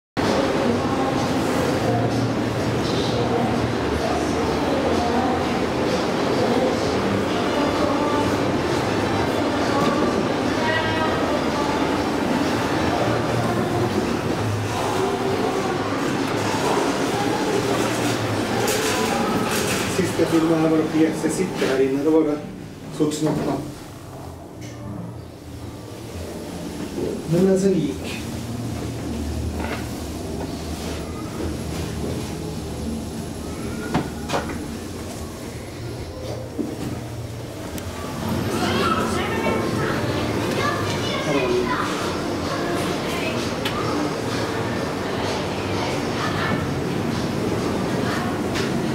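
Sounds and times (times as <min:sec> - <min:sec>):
background chatter with children: 0:00.2 - 0:27.3, 0:29.6 - 0:48.9
elevator ride rumble: 0:00.2 - 0:48.9.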